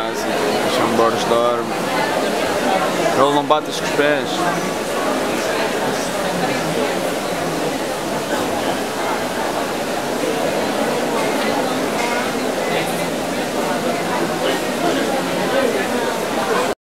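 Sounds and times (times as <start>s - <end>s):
crowd babble echoing: 0.0s - 16.8s.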